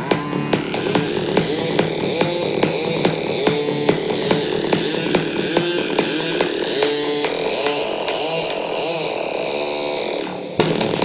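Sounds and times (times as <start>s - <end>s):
steady synthesizer drone: 0.0s - 11.0s
synthesizer tones bending in pitch: 0.0s - 11.0s.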